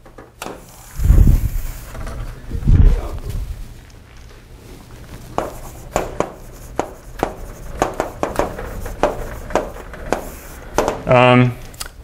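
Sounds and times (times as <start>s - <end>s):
chalk writing on chalkboard: 5.3s - 11.1s.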